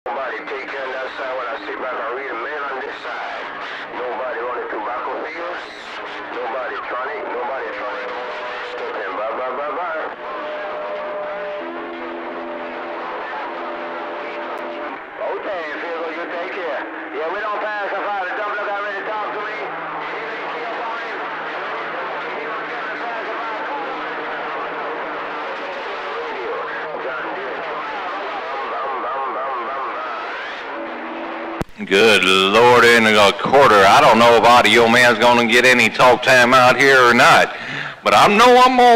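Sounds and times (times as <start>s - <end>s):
jumbled radio voices: 0.1s - 38.9s
whistling radio tones: 0.1s - 38.9s.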